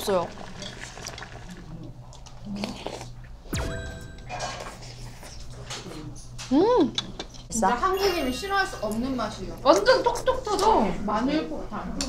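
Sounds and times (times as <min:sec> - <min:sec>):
held chime-like tone: 0:03.6 - 0:05.1, 0:08.0 - 0:09.4.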